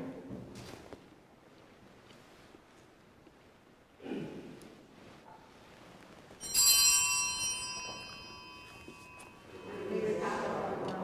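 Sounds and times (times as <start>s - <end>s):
altar bell ringing: 6.4s - 10.7s.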